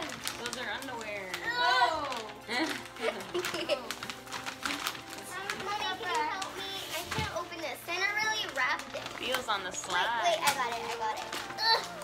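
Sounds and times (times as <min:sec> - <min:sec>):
wrapping paper crinkling: 0:00.0 - 0:12.0.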